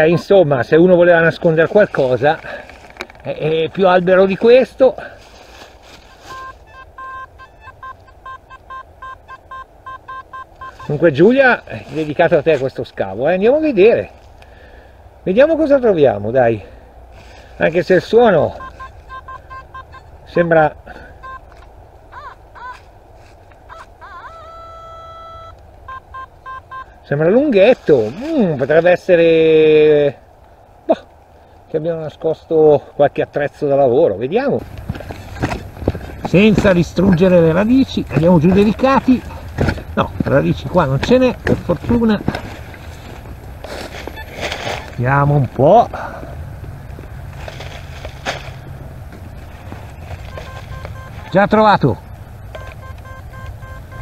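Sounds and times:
hands rummaging through dry leaves: 1.3 - 6.8, 10.6 - 13.0, 27.6 - 29.1, 34.6 - 46.2, 47.2 - 51.3
metal detector warbling chirps: 6.0 - 11.5, 18.2 - 22.8, 23.7 - 27.2, 34.6 - 45.1, 50.0 - 54.0
metal detector high tone: 6.1 - 12.0, 18.0 - 22.8, 23.7 - 27.2, 34.6 - 45.2, 50.0 - 54.0
low steady rumble: 34.2 - 54.0.

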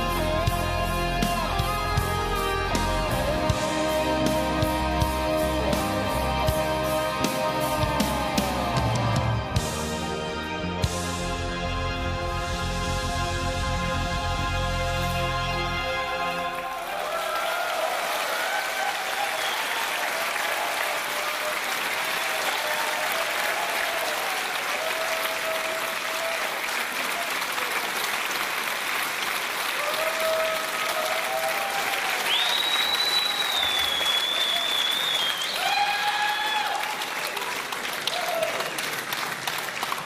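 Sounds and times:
audience applauding and cheering: 0.0 - 11.0, 14.0 - 40.0
long high whistle: 19.2 - 19.8, 32.2 - 36.6.

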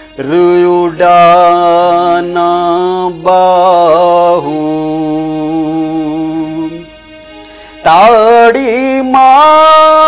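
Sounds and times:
keyboard accompaniment: 0.0 - 10.0
man singing folk song: 0.2 - 6.8, 7.8 - 10.0.

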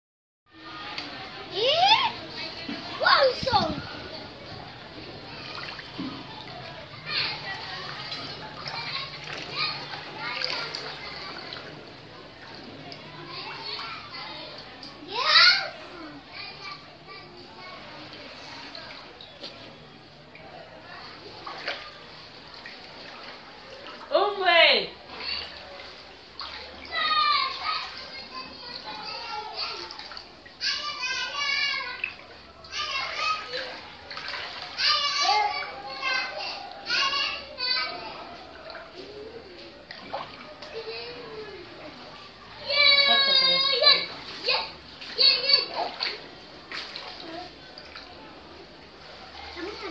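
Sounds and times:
children calling and shouting: 0.5 - 49.9.

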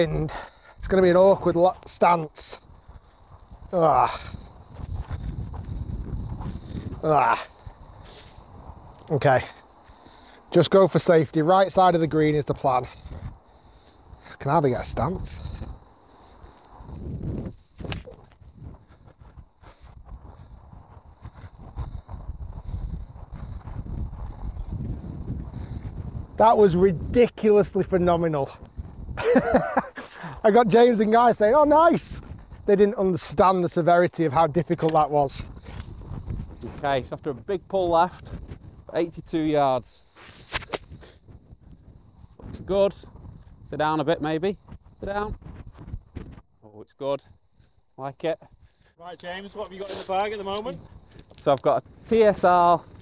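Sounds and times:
wind buffeting microphone: 0.0 - 46.6, 48.4 - 53.0
golf club swishing through grass: 40.0 - 41.3
club striking ball and turf: 40.2 - 41.0.

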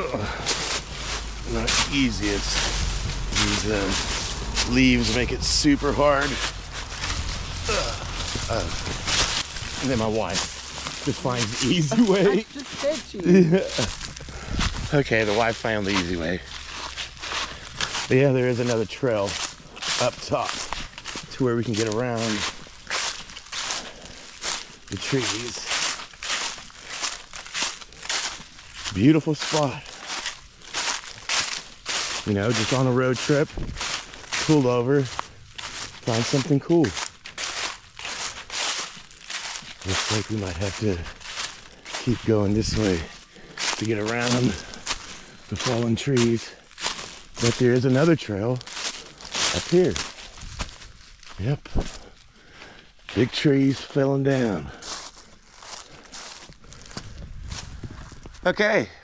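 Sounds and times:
footsteps crunching dry leaves: 0.0 - 58.5.

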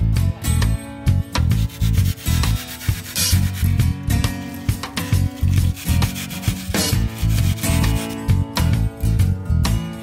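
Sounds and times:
background music with steady beat: 0.0 - 10.0
blade rasping on foam: 1.6 - 3.8, 5.2 - 8.2.

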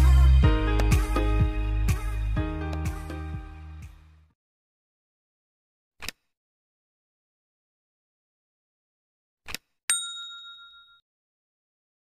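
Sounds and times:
notification bell ding: 9.9 - 11.0.

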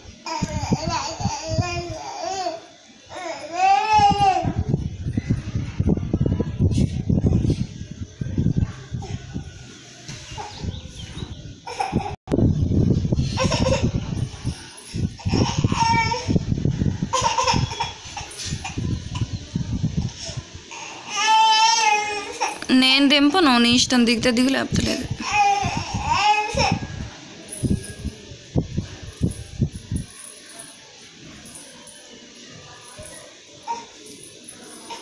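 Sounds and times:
toddler crying: 0.3 - 4.7, 15.2 - 16.4, 17.1 - 19.3, 20.7 - 22.7, 25.2 - 26.9, 33.6 - 34.0.

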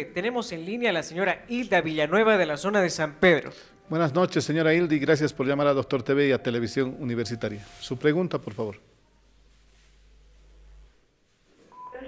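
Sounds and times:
brief steady tone: 11.7 - 12.0
woman speaking over phone: 11.8 - 12.0.

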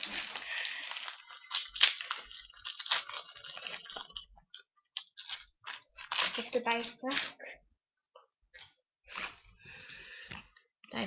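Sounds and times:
foil wrapper crinkling and tearing: 0.0 - 4.3, 5.0 - 7.4.

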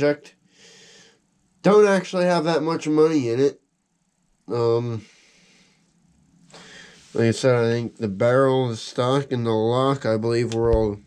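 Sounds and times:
faint breath drawn in: 0.4 - 1.3, 5.0 - 7.2.

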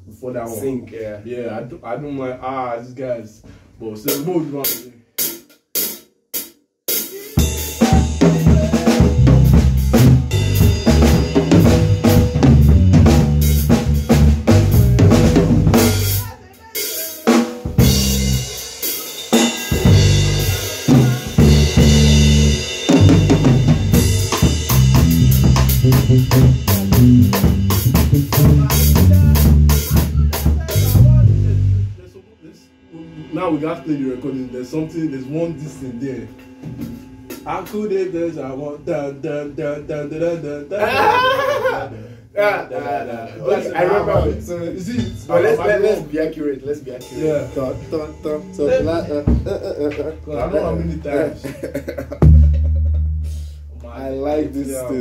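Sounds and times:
drum kit beat: 4.0 - 38.6, 43.5 - 55.0
bass guitar low notes: 7.8 - 16.2, 19.8 - 32.1, 47.0 - 55.0.

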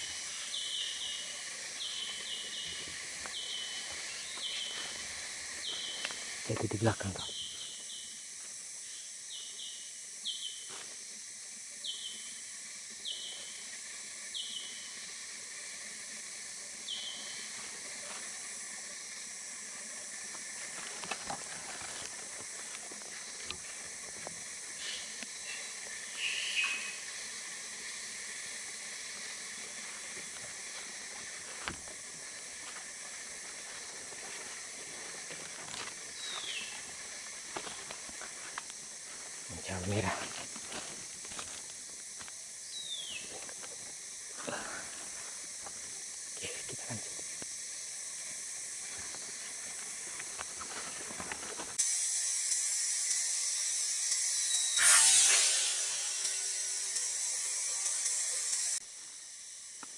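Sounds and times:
forest insects hissing: 0.0 - 59.9
footsteps on leaf litter: 3.2 - 6.3, 32.6 - 41.8.

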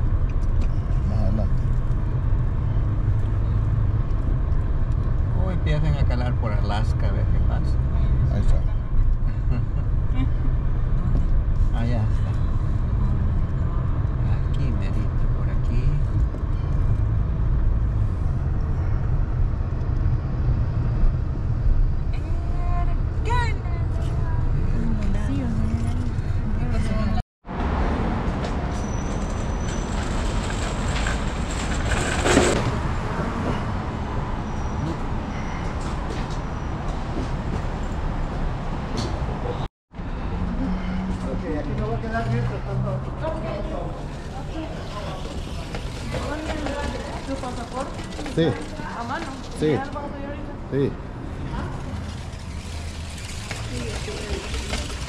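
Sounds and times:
car road and engine rumble: 0.0 - 55.0
traffic ambience: 0.0 - 55.0.

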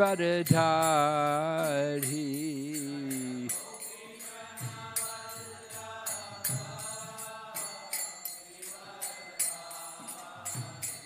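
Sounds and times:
hand cymbals clashing: 0.0 - 11.0.

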